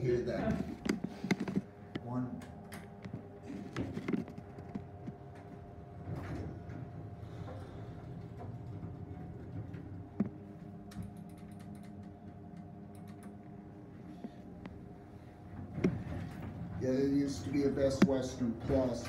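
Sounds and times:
elevator machine hum: 0.0s - 19.0s.

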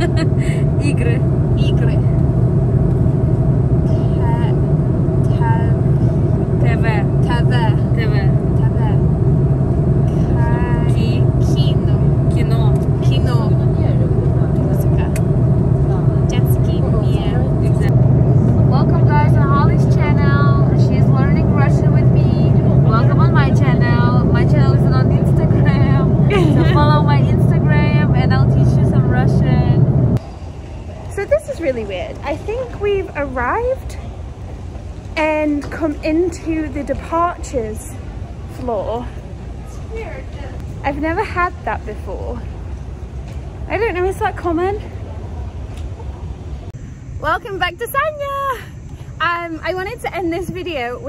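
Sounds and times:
jet cabin drone: 0.0s - 51.0s
voices: 0.0s - 51.0s.

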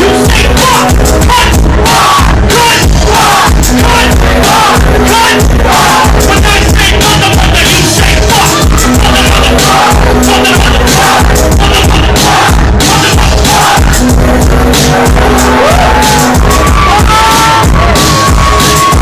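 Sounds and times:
person rapping: 0.0s - 17.5s
heavy bass beat: 0.0s - 19.0s.

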